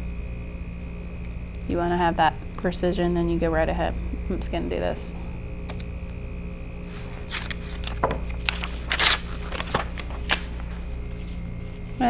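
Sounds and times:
paper scraping and rustling: 0:06.8 - 0:11.8.

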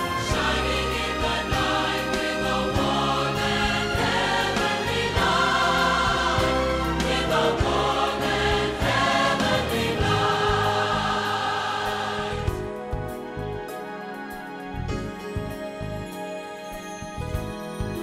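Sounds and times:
choir singing with accompaniment: 0:00.0 - 0:14.2.

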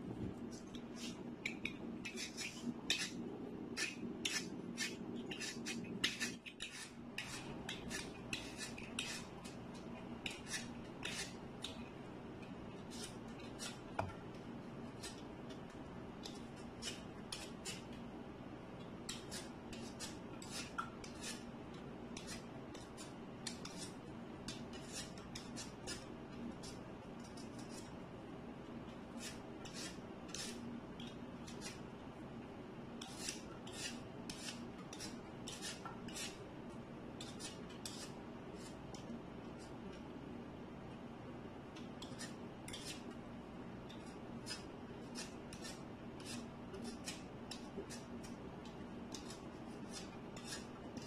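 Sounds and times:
kitchen utensil scraping food: 0:00.5 - 0:09.6, 0:10.2 - 0:11.7, 0:19.1 - 0:21.5, 0:22.2 - 0:27.9, 0:29.2 - 0:30.6, 0:33.0 - 0:36.4, 0:37.2 - 0:38.8, 0:43.9 - 0:48.4, 0:49.1 - 0:51.0
knife cutting vegetables: 0:00.5 - 0:09.6, 0:10.2 - 0:11.8, 0:22.2 - 0:27.9, 0:29.2 - 0:31.8, 0:33.0 - 0:36.4, 0:43.9 - 0:48.4, 0:49.1 - 0:51.0.

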